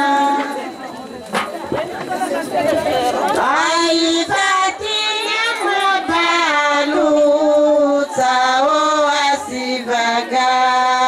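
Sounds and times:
women's choir singing: 0:00.0 - 0:00.9, 0:02.0 - 0:11.0
mixed voices: 0:00.0 - 0:11.0.

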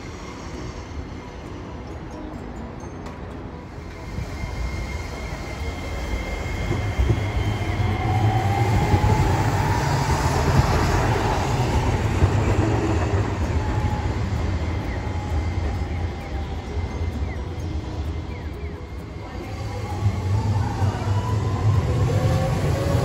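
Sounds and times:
tram rumbling past: 0:00.0 - 0:23.0.

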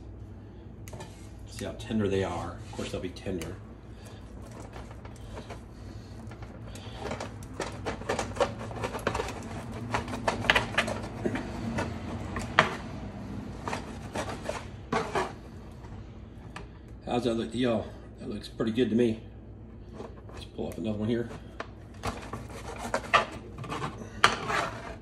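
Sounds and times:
steady low hum: 0:00.0 - 0:25.0
knife and tongs scraping ribs: 0:02.6 - 0:12.9, 0:13.5 - 0:15.6, 0:21.1 - 0:25.0.

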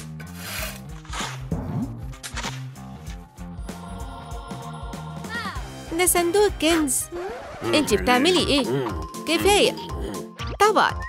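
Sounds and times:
shovel scraping into dirt: 0:00.0 - 0:01.5
background music: 0:00.0 - 0:11.0.

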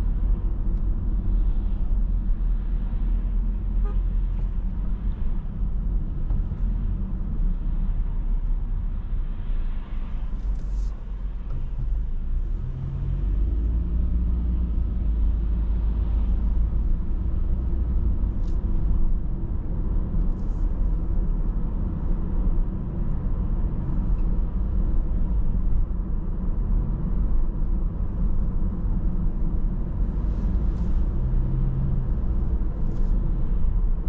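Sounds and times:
car engine and tyre rumble: 0:00.0 - 0:34.0.

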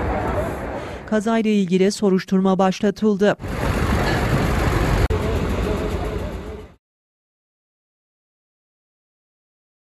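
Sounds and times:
traffic rumble: 0:03.4 - 0:06.8.

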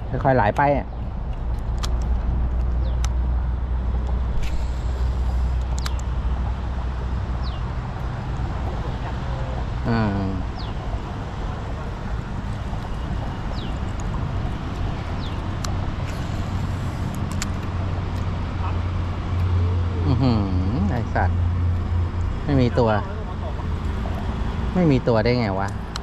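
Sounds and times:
road traffic rumble: 0:00.0 - 0:26.0
vehicle passing: 0:00.0 - 0:26.0
person speaking: 0:22.4 - 0:23.7.

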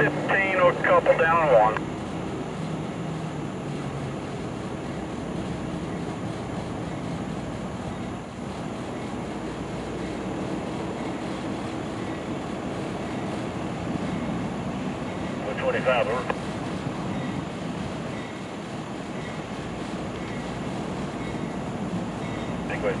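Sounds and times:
diesel locomotives droning: 0:00.0 - 0:23.0.

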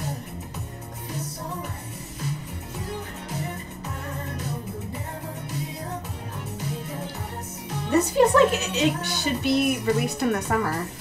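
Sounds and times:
person singing: 0:00.0 - 0:11.0
steady bass line: 0:00.0 - 0:11.0.

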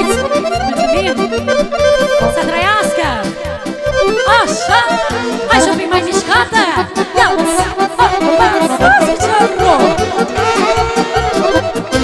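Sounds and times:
accordion playing fast melody: 0:00.0 - 0:12.0.

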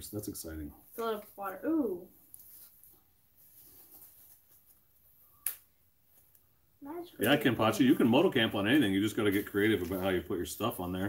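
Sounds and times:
faint rustling: 0:00.8 - 0:05.3.

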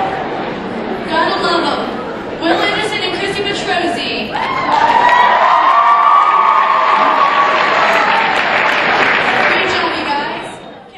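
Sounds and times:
audience applauding and cheering: 0:04.4 - 0:10.1.

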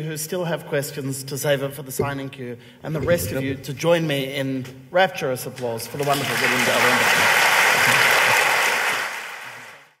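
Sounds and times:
audience applauding: 0:06.0 - 0:10.0.

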